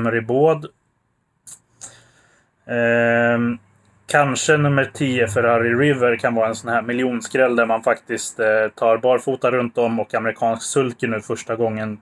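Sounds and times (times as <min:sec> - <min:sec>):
man's mouth click: 0:01.4 - 0:02.0
intake of breath: 0:01.7 - 0:02.6.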